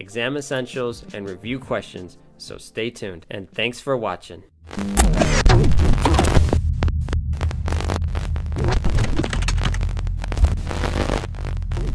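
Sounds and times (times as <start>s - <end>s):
sharp glitch clicks: 4.7s - 6.6s
deep steady hum: 4.7s - 11.9s
digital static crackle: 4.7s - 11.9s.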